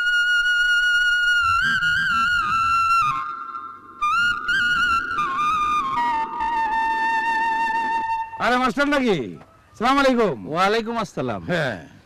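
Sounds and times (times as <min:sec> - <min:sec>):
flute melody: 0:00.0 - 0:09.6.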